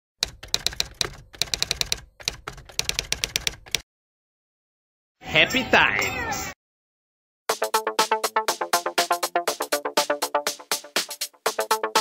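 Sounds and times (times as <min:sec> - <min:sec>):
typewriter keys clacking: 0:00.2 - 0:03.8.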